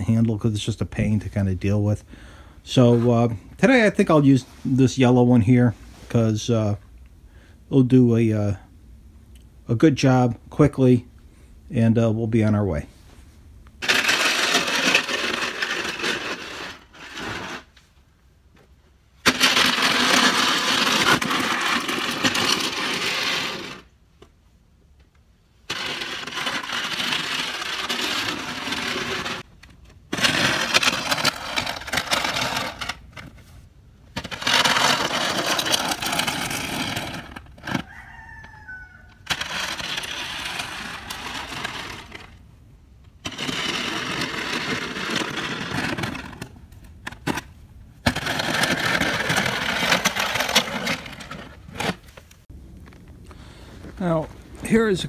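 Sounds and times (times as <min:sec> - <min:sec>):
plastic shovel scraping snow: 0:13.8 - 0:17.8, 0:19.2 - 0:23.9, 0:25.7 - 0:29.5, 0:30.1 - 0:37.8, 0:39.2 - 0:42.4, 0:43.2 - 0:47.4, 0:48.0 - 0:52.2.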